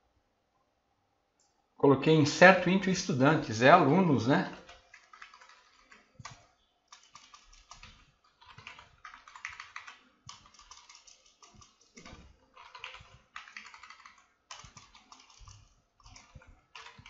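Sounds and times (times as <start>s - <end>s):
computer keyboard typing: 4.5s - 17.0s.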